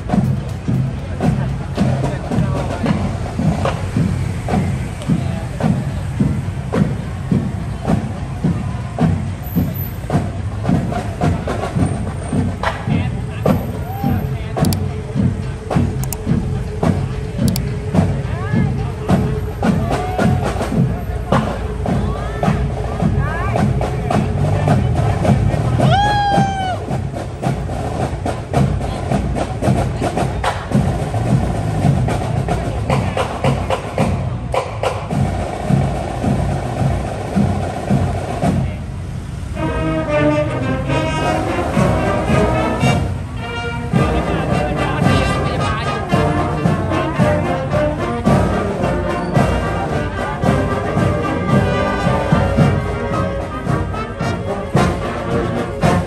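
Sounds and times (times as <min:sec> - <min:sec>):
parade music with drumbeat: 0:00.0 - 0:56.0
street crowd voices: 0:00.0 - 0:56.0
brass tones: 0:39.4 - 0:56.0.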